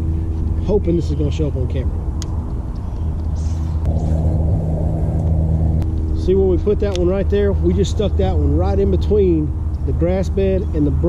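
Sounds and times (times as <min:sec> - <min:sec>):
low rumble with motor hum: 0:00.0 - 0:11.0.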